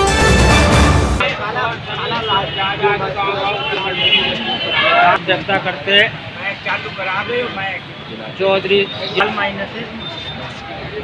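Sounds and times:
theme music: 0:00.0 - 0:01.3
people speaking: 0:01.2 - 0:11.0.

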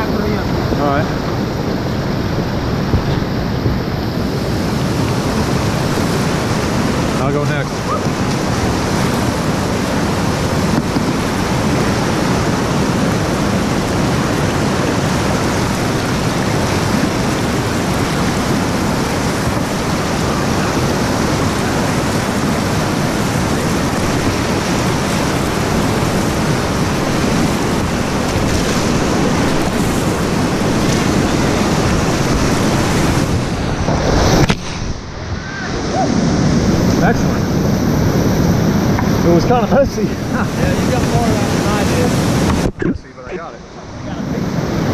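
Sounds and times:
whitewater rapids rushing: 0:00.0 - 0:44.9.

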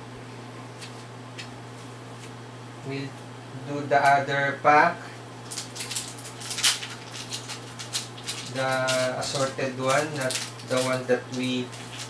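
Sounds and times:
low steady hum: 0:00.0 - 0:12.0
foil wrapper crinkling: 0:05.4 - 0:12.0.

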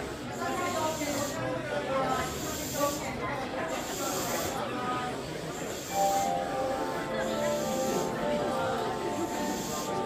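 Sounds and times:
people talking quietly: 0:00.0 - 0:10.0
train air hissing: 0:00.2 - 0:04.7, 0:05.5 - 0:10.0.

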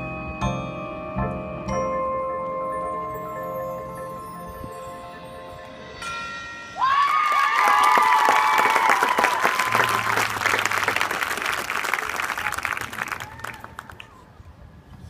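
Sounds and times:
ringing mallet percussion: 0:00.0 - 0:07.8
whoops: 0:06.8 - 0:10.4, 0:12.0 - 0:14.2
audience clapping and cheering: 0:06.8 - 0:14.2.

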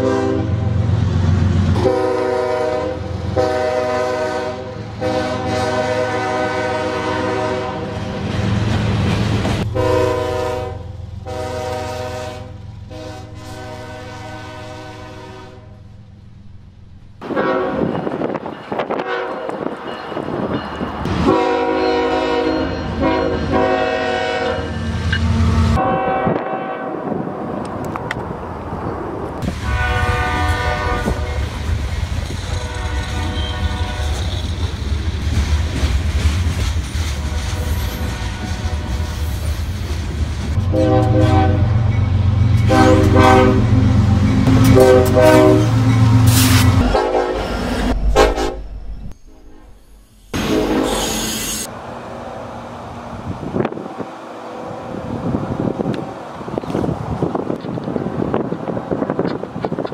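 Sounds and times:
locomotive air horn blasts: 0:00.0 - 0:00.7, 0:01.8 - 0:08.1, 0:09.6 - 0:15.8, 0:17.2 - 0:18.0, 0:18.9 - 0:19.6, 0:21.1 - 0:24.8, 0:25.5 - 0:27.1, 0:29.4 - 0:31.5, 0:32.5 - 0:34.5, 0:37.2 - 0:39.2, 0:40.6 - 0:41.9, 0:42.5 - 0:49.6, 0:50.3 - 0:51.7
freight train wheels rumbling: 0:00.0 - 0:59.9
locomotive engines rumbling: 0:00.0 - 0:59.9.

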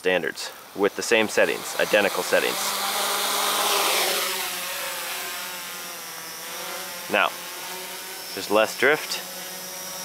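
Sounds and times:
quadcopter motors whining: 0:00.3 - 0:10.0.

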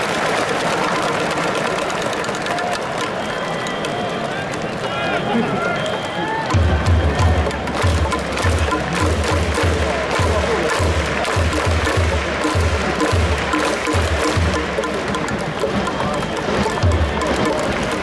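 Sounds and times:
ballpark crowd noise: 0:00.0 - 0:18.0
music with heavy drum beat: 0:06.5 - 0:18.0.

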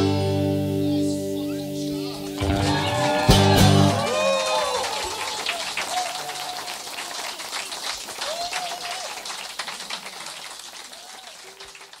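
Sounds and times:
voices calling out from crowd: 0:00.7 - 0:12.0
audience applauding: 0:02.0 - 0:12.0.

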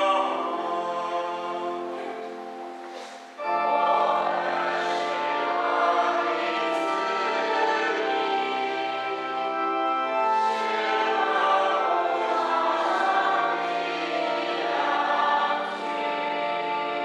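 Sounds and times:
choir singing a slow hymn: 0:00.0 - 0:17.0.

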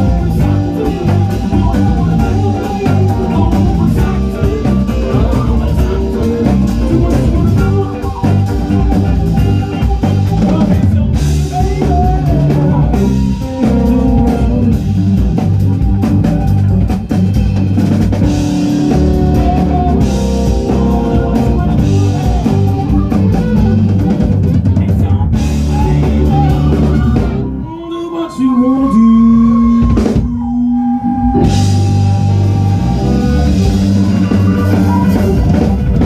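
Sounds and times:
trumpet playing: 0:00.0 - 0:10.6, 0:18.2 - 0:24.5, 0:25.6 - 0:36.0
drum kit steady beat: 0:00.0 - 0:27.6, 0:29.6 - 0:30.5, 0:31.3 - 0:36.0
bass: 0:00.0 - 0:36.0
electric guitars: 0:00.0 - 0:36.0
electric keyboard: 0:00.0 - 0:36.0.

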